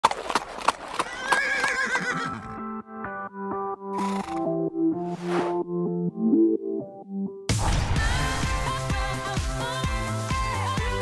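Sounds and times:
hoof clip-clops: 0:00.0 - 0:02.3
horse whinnying: 0:00.9 - 0:02.6.

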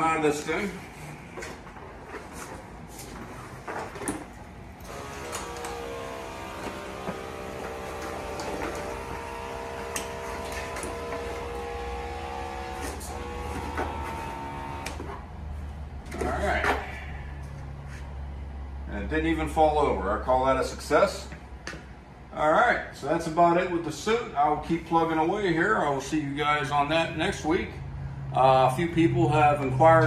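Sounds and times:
motors whining: 0:04.8 - 0:15.4.

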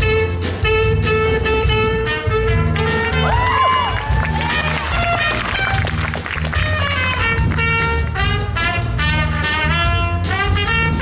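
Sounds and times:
jazz big band playing: 0:00.0 - 0:11.0.

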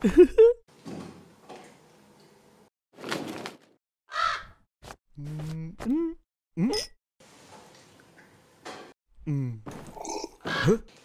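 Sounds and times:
crow cawing: 0:04.1 - 0:04.6, 0:10.4 - 0:10.7
man humming: 0:05.2 - 0:06.9, 0:09.2 - 0:09.7
man saying hm: 0:05.2 - 0:06.9, 0:09.2 - 0:09.6.

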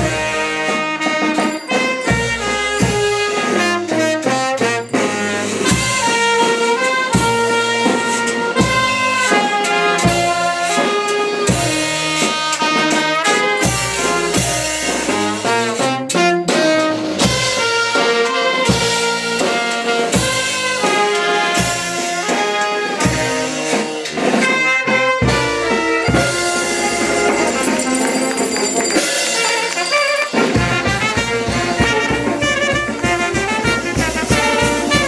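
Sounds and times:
low brass horn: 0:00.0 - 0:35.0
trumpets and saxophone melody: 0:00.0 - 0:35.0
bass drum beats: 0:24.5 - 0:35.0.

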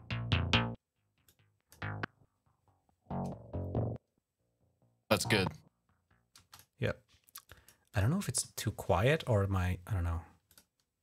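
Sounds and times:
quiet compressed bass: 0:05.1 - 0:05.6.

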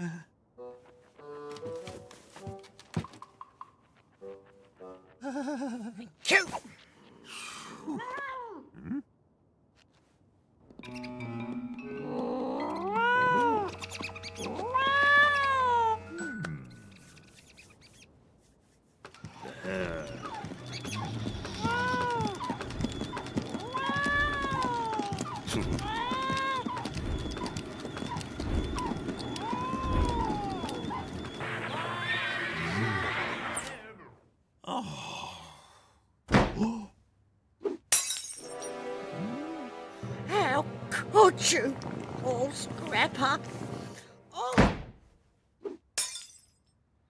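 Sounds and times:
cartoon cat yowling: 0:12.4 - 0:13.7, 0:14.5 - 0:16.1.

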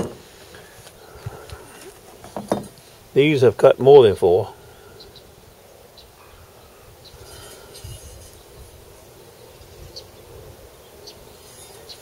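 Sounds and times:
thin buzz: 0:07.0 - 0:12.0.

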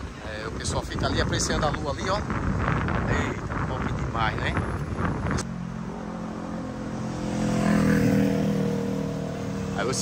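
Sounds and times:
road noise: 0:00.0 - 0:10.0
vehicle engine droning: 0:04.4 - 0:10.0.

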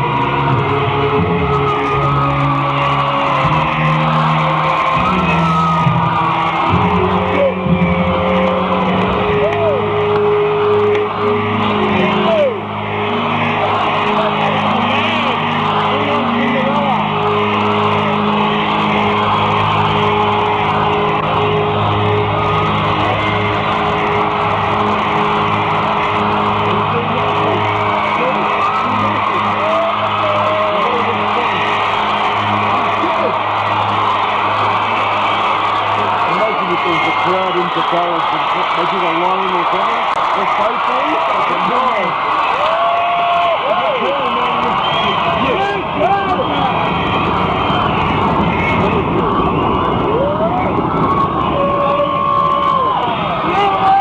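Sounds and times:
crowd cheering and whooping: 0:00.0 - 0:54.0
whistles and shouts from crowd: 0:01.4 - 0:07.4, 0:41.4 - 0:54.0.

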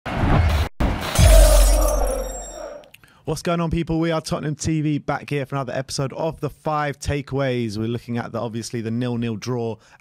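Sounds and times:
deep boom: 0:00.1 - 0:02.4
glass shatter crash: 0:01.1 - 0:02.8.

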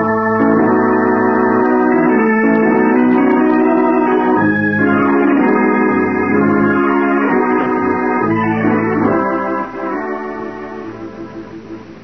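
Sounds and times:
organ chords: 0:00.0 - 0:12.0.

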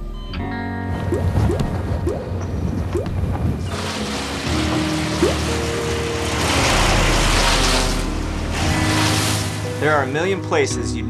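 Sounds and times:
background music: 0:00.0 - 0:03.0, 0:03.6 - 0:11.0
wood chipper shredding: 0:03.5 - 0:10.7.

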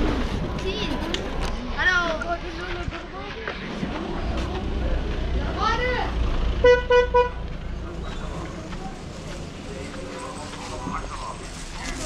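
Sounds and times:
low rumble of street noise: 0:00.0 - 0:12.0
vehicle horn toots: 0:06.6 - 0:07.4.

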